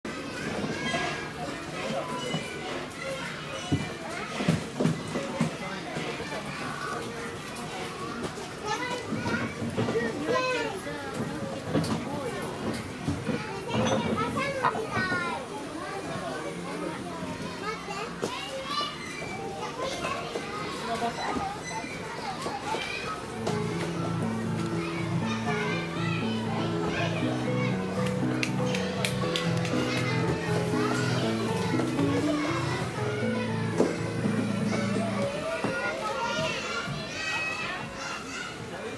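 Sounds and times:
children chattering and calling out: 0.1 - 38.9.

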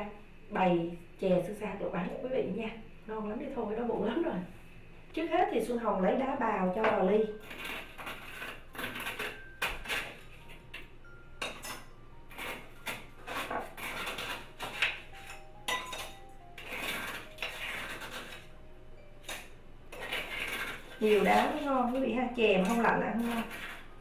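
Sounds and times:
ice clinking against glass: 15.2 - 17.5.

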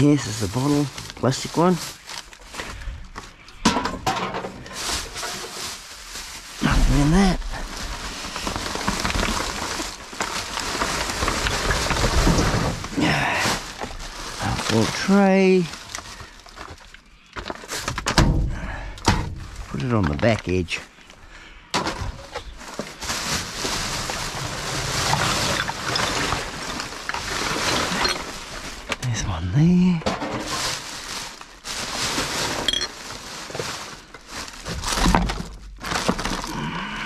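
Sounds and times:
plastic garbage bags rustling: 0.0 - 18.3, 19.2 - 37.0.

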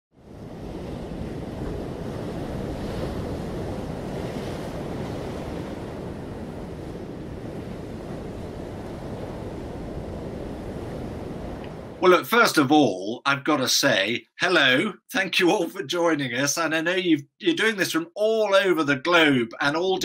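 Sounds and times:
ocean waves washing: 0.2 - 20.0.

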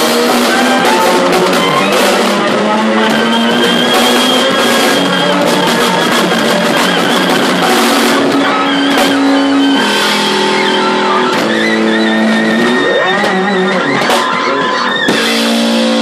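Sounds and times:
drum kit: 0.0 - 16.0
fretless electric bass: 0.0 - 16.0.

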